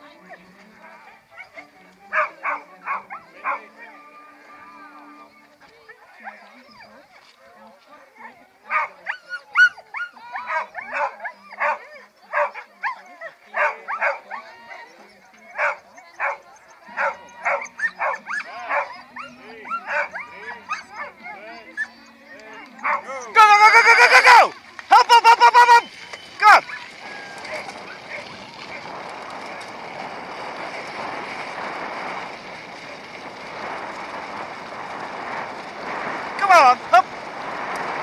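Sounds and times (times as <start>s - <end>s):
dog barking and yelping: 8.7s - 23.4s, 26.4s - 28.8s.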